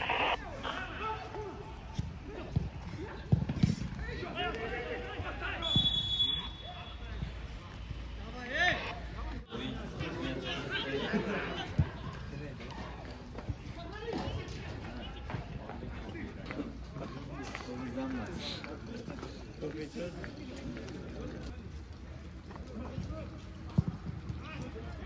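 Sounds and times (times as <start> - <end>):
high whistle tone: 5.6 - 7.1.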